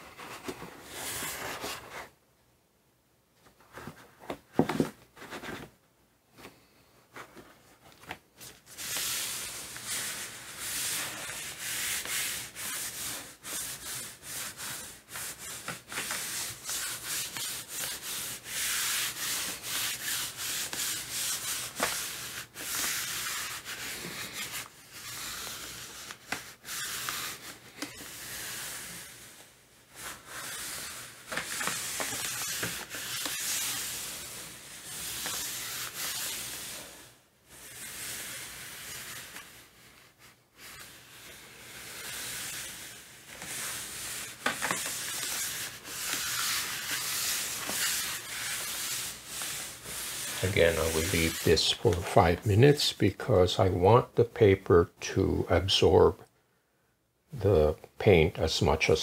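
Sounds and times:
hands rubbing paper: 0:08.0 - 0:53.3.

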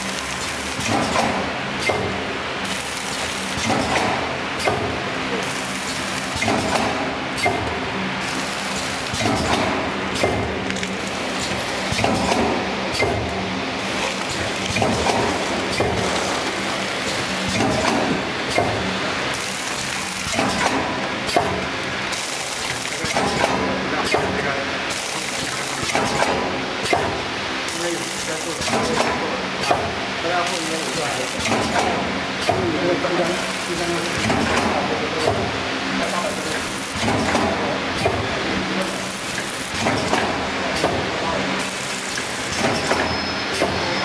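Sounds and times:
machine clatter and knocks: 0:00.0 - 0:13.4, 0:14.0 - 0:43.8
machine stroke: 0:00.0 - 0:21.5
packaging machine hum: 0:00.0 - 0:44.0.

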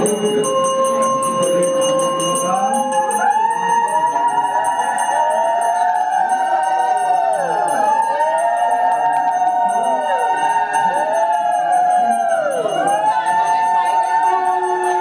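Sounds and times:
small bell ringing: 0:00.0 - 0:15.0.

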